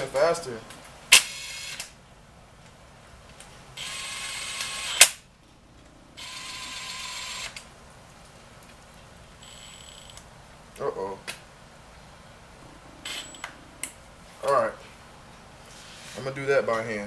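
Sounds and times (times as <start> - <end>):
cordless drill whining: 3.8 - 5.0, 6.2 - 7.6.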